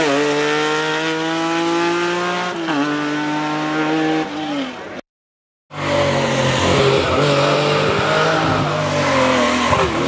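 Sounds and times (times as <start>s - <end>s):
rally car engine accelerating: 0.0s - 4.8s, 5.8s - 10.0s.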